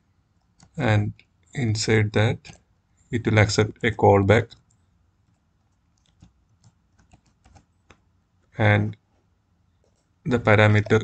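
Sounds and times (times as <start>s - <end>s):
faint keyboard typing: 0.3s - 1.6s, 2.2s - 2.7s, 3.8s - 11.0s.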